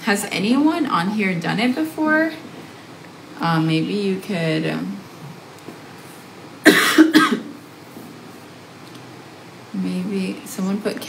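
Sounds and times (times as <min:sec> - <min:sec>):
woman coughing: 0:06.6 - 0:07.6.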